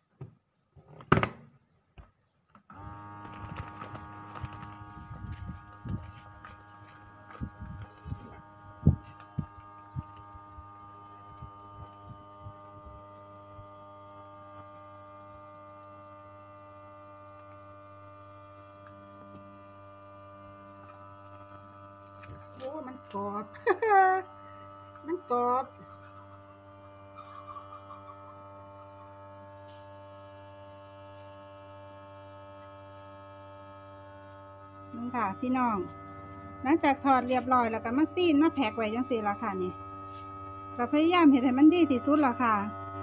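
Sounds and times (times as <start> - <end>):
vacuum sealer pump humming: 2.5 - 43.0.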